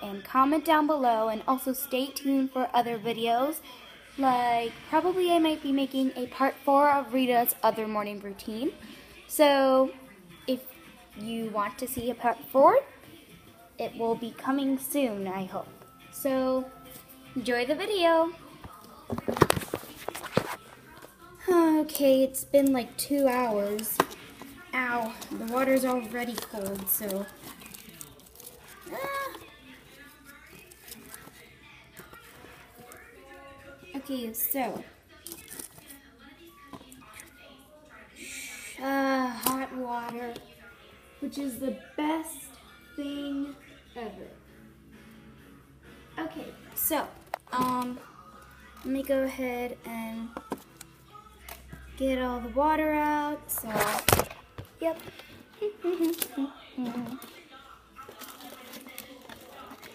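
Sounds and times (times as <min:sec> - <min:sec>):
faint background music: 0:00.0 - 0:59.9
child's soft voice: 0:28.9 - 0:29.4.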